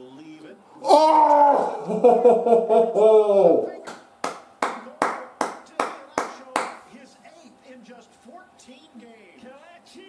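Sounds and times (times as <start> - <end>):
person clapping hands: 3.8 - 6.8.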